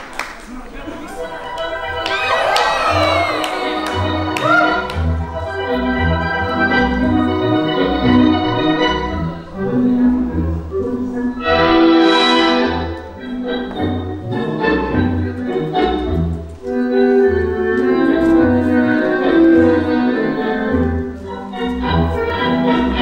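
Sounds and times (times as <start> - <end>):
tango music over sound system: 0.0 - 23.0.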